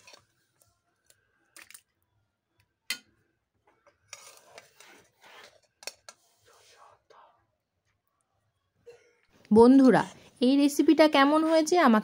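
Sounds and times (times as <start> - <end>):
spatula scraping steel pot: 0.0 - 0.3, 3.9 - 6.4.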